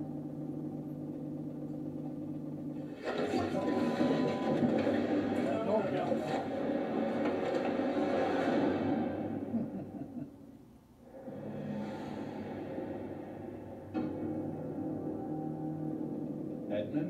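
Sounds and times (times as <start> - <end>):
eerie background music: 0.0 - 10.4, 11.0 - 17.0
low drone: 0.0 - 17.0.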